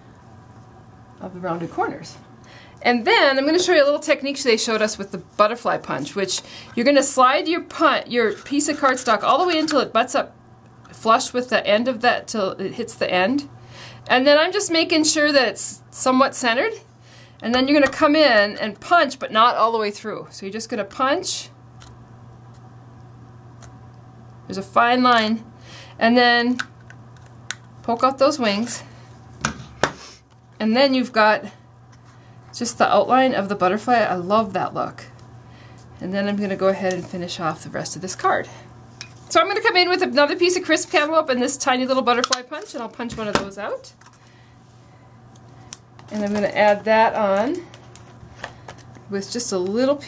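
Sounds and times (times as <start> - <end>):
steady low hum: 0.0 - 50.0.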